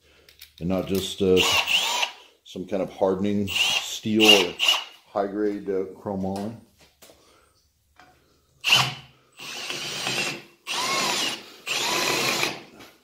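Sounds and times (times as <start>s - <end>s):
hand drill cutting steel rod: 1.4s - 2.2s, 3.5s - 5.0s, 8.6s - 12.7s.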